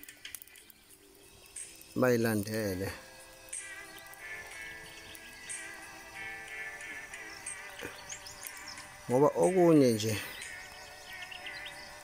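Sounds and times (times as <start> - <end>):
faint background music: 0.0 - 12.0
small insect-like chirps: 0.0 - 12.0
drawn-out wavering call: 10.2 - 12.0.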